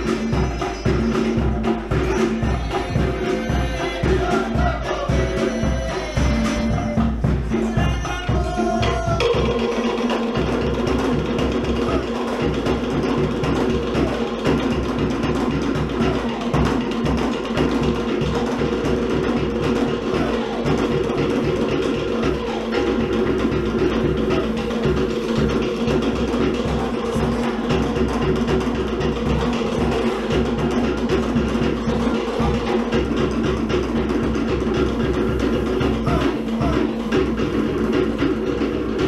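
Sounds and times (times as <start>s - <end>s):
deeper drum: 0.0s - 39.0s
wooden slit drums: 0.0s - 39.0s.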